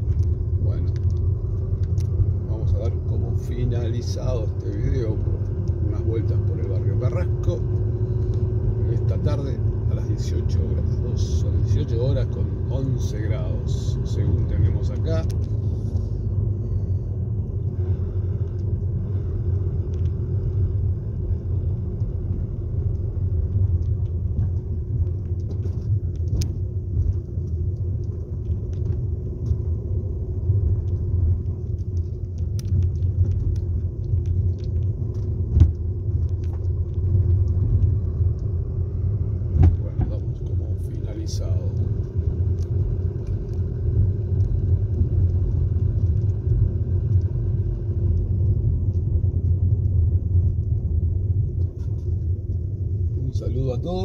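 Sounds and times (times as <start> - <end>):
car engine and tyres rumbling: 0.0 - 54.0.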